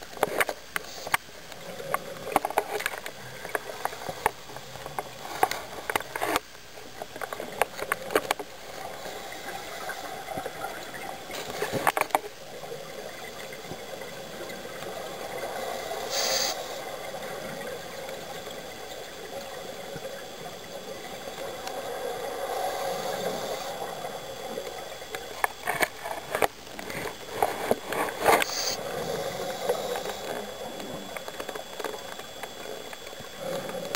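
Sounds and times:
regulator exhaust bubbles underwater: 7.0s - 33.9s
breath hissing through regulator: 15.0s - 17.9s, 20.6s - 25.4s, 27.4s - 30.8s.

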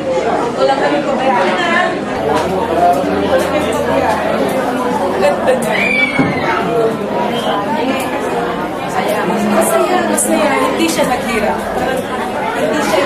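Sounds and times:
chatter of voices: 0.0s - 13.0s.

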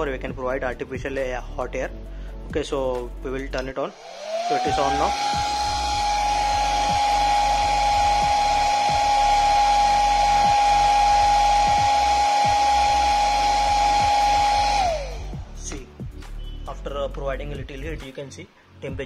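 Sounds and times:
hair dryer running: 3.9s - 15.5s
hair dryer motor winding down: 3.9s - 15.6s.

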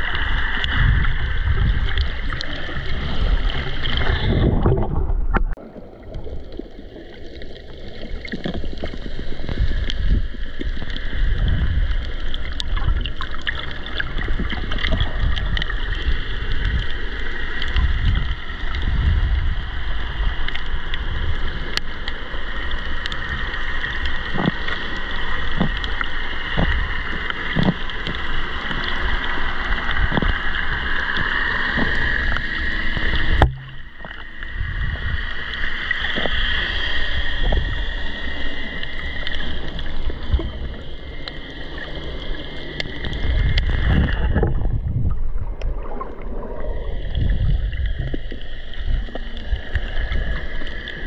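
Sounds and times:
muffled underwater rush of water: 0.0s - 51.0s
faint clicks: 20.4s - 34.5s, 37.4s - 44.6s.

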